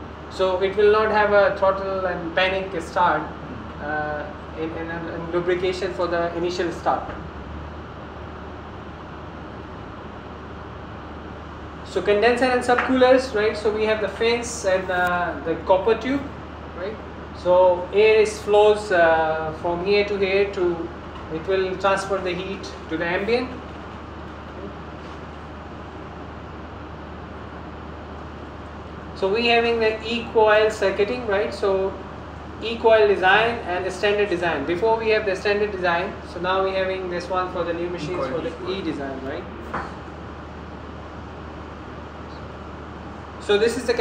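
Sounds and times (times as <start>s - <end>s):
constant low hum: 0.0s - 44.0s.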